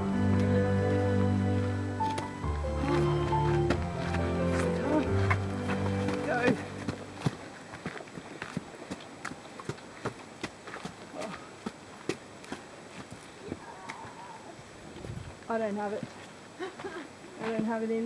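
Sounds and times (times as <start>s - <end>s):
background music: 0.0s - 7.4s
footsteps on dirt and stone: 1.5s - 14.2s, 15.0s - 18.0s.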